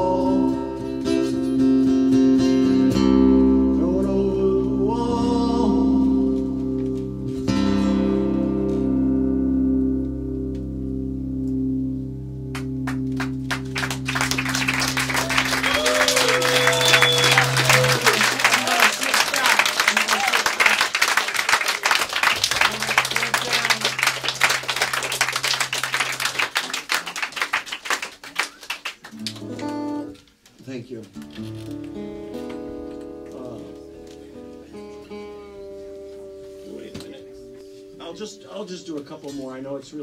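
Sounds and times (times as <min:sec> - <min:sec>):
acoustic guitar notes and chords: 0:00.0 - 0:18.8, 0:22.0 - 0:26.6, 0:29.1 - 0:40.0
audience clapping and cheering: 0:12.5 - 0:30.2.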